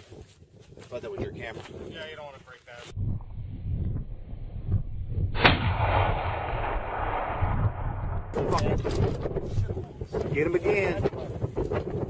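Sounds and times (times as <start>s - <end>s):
rifle shot: 5.3s - 9.4s.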